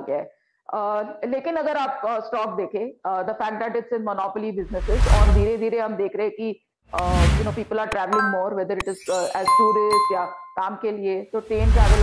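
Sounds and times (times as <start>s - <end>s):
bell chime: 8.2s - 10.6s.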